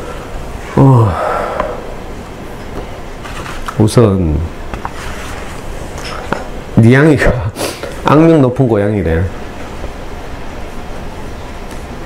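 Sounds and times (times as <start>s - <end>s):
low room hum: 0.0s - 12.0s
man sighing: 0.7s - 1.9s.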